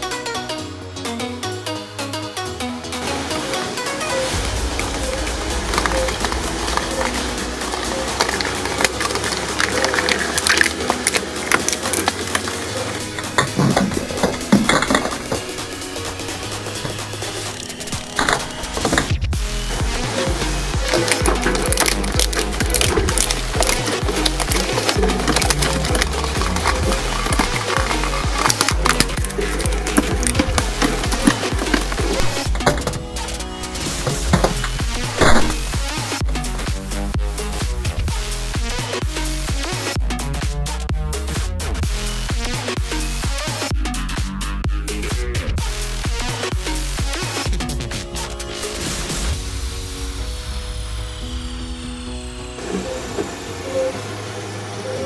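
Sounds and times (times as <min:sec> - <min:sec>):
electronic dance music: 0:02.6 - 0:55.0
shredder crunching plastic toy: 0:04.6 - 0:36.8.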